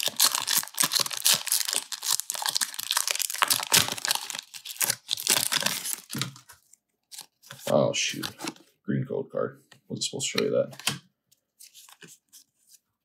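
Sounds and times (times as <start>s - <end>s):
foil wrapper crinkling and tearing: 0.0s - 7.6s.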